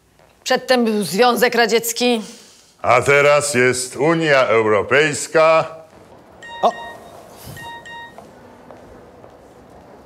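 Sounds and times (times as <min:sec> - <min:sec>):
phone message alert beeps: 0:06.4 - 0:08.2.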